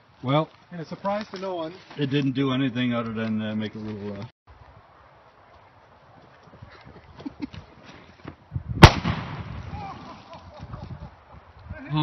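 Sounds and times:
firework bang: 8.8 - 10.1.

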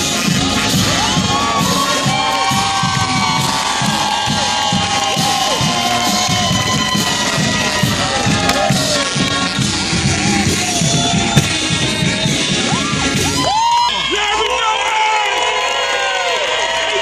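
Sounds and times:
marching band drums: 0.0 - 13.6
crowd cheering and yelling: 0.0 - 17.0.

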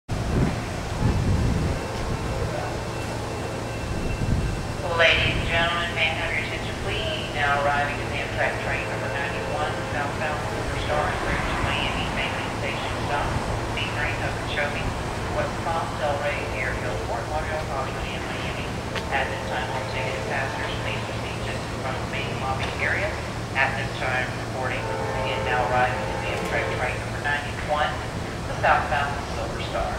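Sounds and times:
low rumbles: 0.1 - 29.9
steady low hum: 0.1 - 29.9
public-address voice: 4.8 - 29.9.

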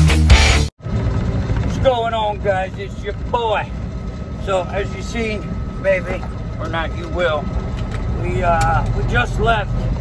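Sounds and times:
truck engine rumble and road noise: 0.0 - 10.0
man talking: 4.4 - 9.9.

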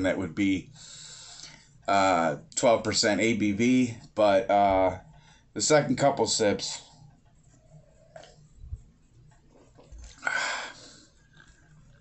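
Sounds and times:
breathy exhale: 10.2 - 11.1.

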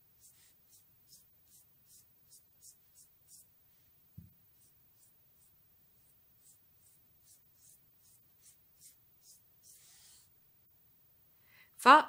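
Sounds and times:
fingers rubbing paste on skin: 0.0 - 3.9, 4.5 - 10.3.

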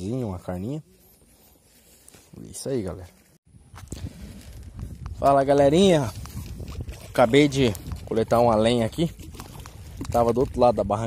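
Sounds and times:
rustling of dead branches: 0.2 - 10.7.

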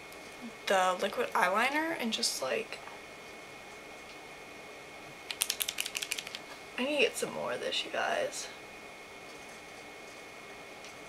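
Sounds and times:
eyeliner pen clicks: 5.3 - 6.4.

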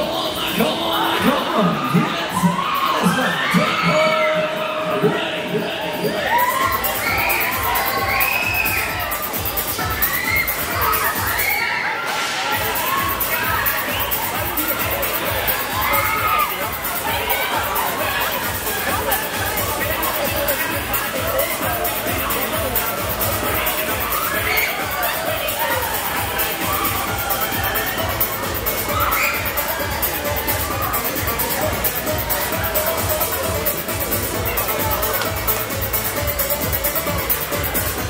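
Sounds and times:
riders screaming and whooping: 1.1 - 5.1, 6.0 - 19.7, 23.4 - 31.2
pulsing beat: 5.0 - 11.5, 12.6 - 38.0.

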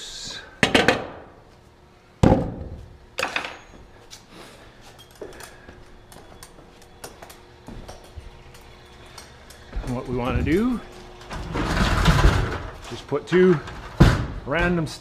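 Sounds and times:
footsteps on wooden stairs: 5.2 - 8.4, 9.0 - 11.0
heavy thumps: 13.7 - 14.9.

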